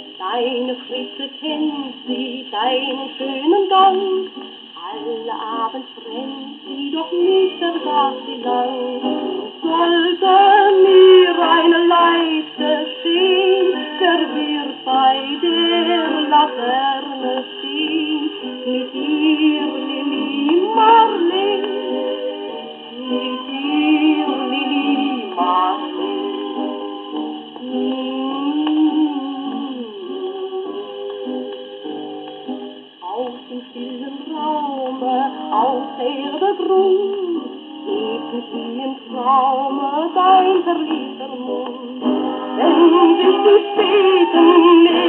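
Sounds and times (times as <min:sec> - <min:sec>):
woman singing: 0:00.0 - 0:22.1, 0:22.9 - 0:26.5, 0:27.5 - 0:30.9, 0:33.0 - 0:45.0
old gramophone record playing: 0:00.0 - 0:45.0.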